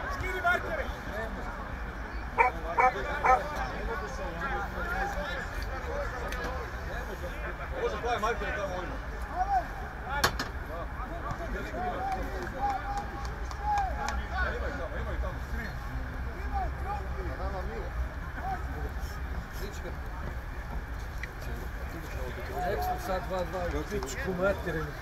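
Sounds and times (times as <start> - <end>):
distant players shouting: 2.3 - 3.7.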